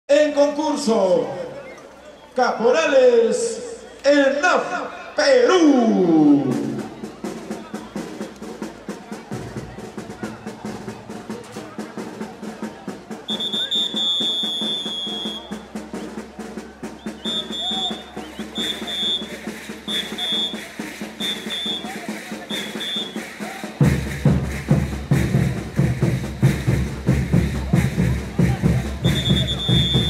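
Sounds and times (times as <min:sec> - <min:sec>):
band music with drums: 0:05.4 - 0:30.0
whistle blasts: 0:13.3 - 0:16.2, 0:16.9 - 0:23.9, 0:29.0 - 0:30.0.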